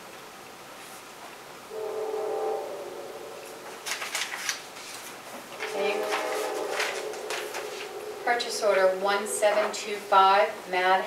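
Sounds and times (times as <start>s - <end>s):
horn-like chord: 1.7s - 4.4s, 5.5s - 9.8s.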